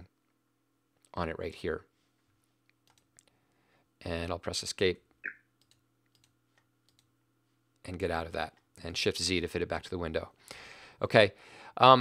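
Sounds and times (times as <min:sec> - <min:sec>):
keyboard and mouse clicks: 0:02.8 - 0:03.3, 0:05.2 - 0:07.1.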